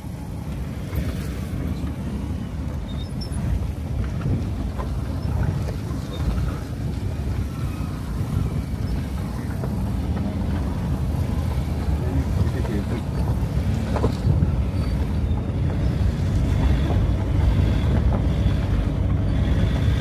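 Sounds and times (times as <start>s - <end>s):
vehicle rumbling on gravel road: 0.0s - 20.0s
wind buffeting microphone: 0.0s - 20.0s.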